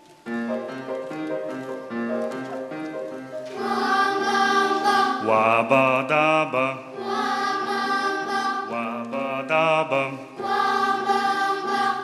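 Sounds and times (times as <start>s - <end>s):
piano accompaniment: 0.0s - 12.0s
boys' choir singing: 3.5s - 12.0s.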